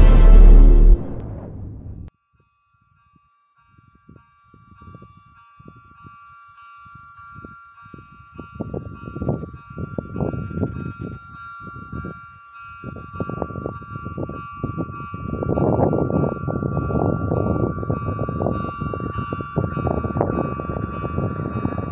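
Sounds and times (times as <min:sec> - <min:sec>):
wind buffeting microphone: 0:07.4 - 0:21.9.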